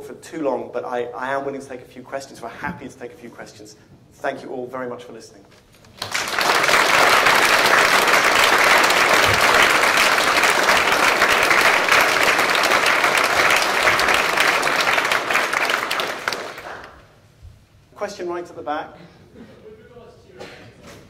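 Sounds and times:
audience applauding: 0:05.9 - 0:17.2.

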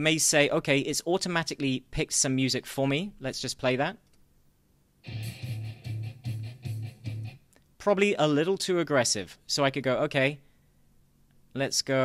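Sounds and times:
background music with pulsing bass: 0:05.1 - 0:07.4.

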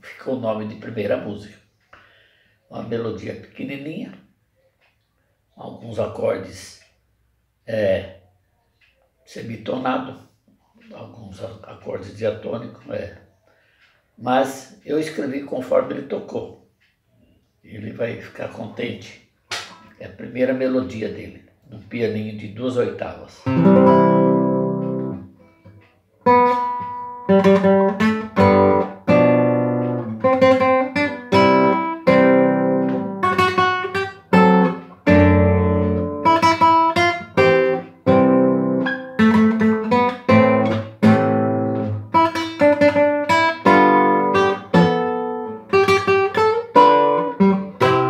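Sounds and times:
classical guitar fingerstyle: 0:23.4 - 0:48.0.

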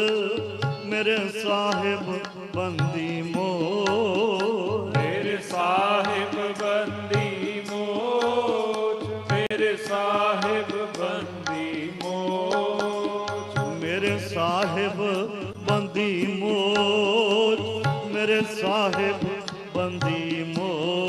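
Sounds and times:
harmoniums: 0:00.0 - 0:21.0
men singing a hymn: 0:00.0 - 0:21.0
tabla strokes: 0:00.0 - 0:21.0.

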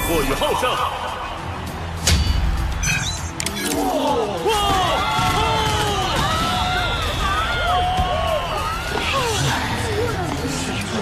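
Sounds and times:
crowd cheering and shouting: 0:00.0 - 0:11.0
dramatic orchestral score: 0:00.0 - 0:11.0.

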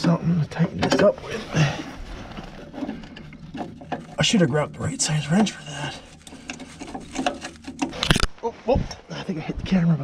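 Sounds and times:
metal fitting handling noise: 0:05.0 - 0:08.3.

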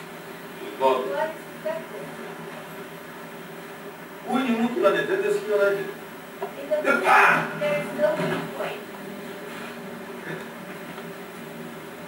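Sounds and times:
videotape background hiss: 0:00.0 - 0:12.0.

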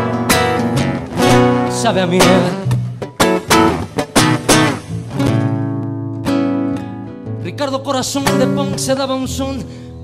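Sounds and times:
acoustic guitar strumming: 0:00.0 - 0:10.0.

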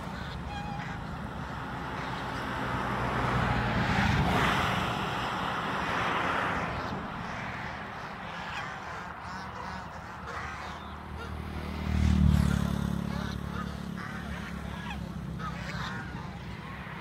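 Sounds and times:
geese honking: 0:00.0 - 0:03.8, 0:05.2 - 0:17.0.

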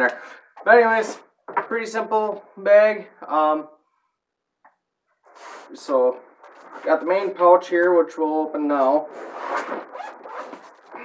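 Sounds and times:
zipper pulled open: 0:09.1 - 0:11.0.

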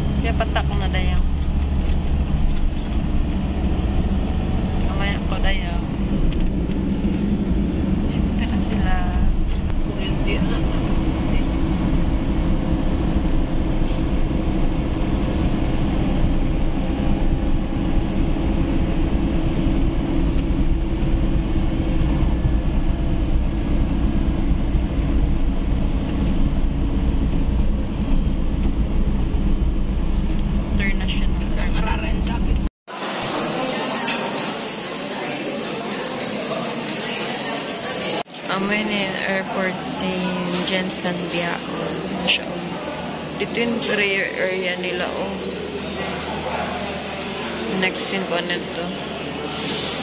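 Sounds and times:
road noise inside cabin: 0:00.0 - 0:33.2
vehicle engine noise: 0:00.0 - 0:33.5.

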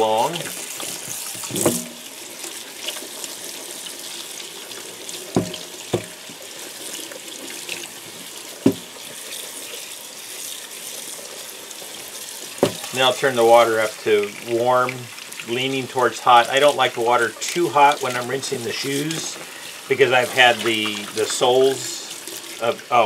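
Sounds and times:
water running into sink: 0:00.0 - 0:23.0
sharp knocks: 0:01.5 - 0:02.0, 0:05.4 - 0:06.2, 0:08.6 - 0:08.9, 0:12.6 - 0:12.9.

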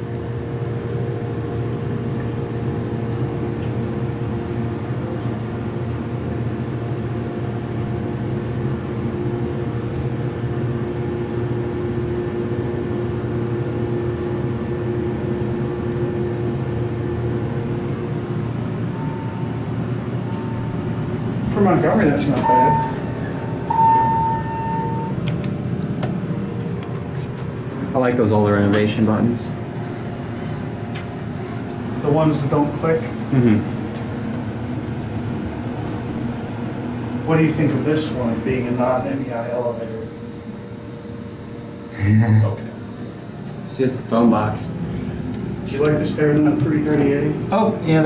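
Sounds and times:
elevator humming: 0:00.0 - 0:48.0.

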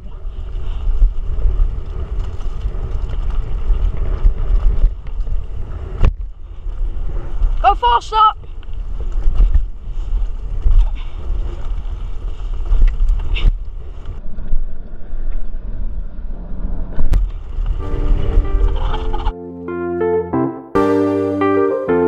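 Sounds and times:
wind on microphone: 0:00.0 - 0:07.6, 0:08.4 - 0:19.3
mountain bike rattling on dirt: 0:00.0 - 0:17.8
electric piano music: 0:17.8 - 0:22.0.

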